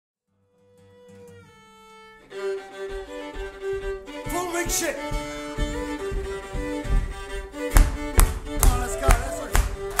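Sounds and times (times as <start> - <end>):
acoustic folk band playing: 0.6 - 10.0.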